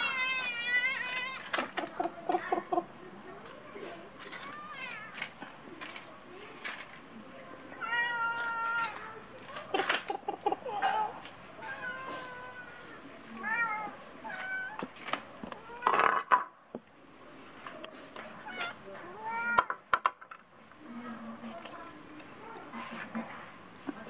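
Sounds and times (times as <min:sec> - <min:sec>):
cats meowing: 0:00.0 - 0:02.4, 0:04.2 - 0:05.4, 0:07.8 - 0:09.3, 0:10.1 - 0:14.9, 0:18.4 - 0:19.8.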